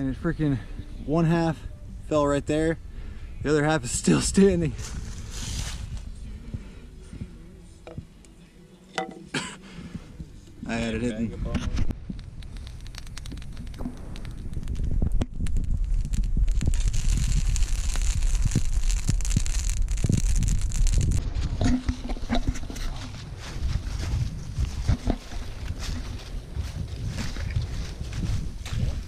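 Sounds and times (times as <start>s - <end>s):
fire low rumble: 0.0s - 8.2s, 9.6s - 29.0s
campfire crackling and popping: 9.4s - 29.0s.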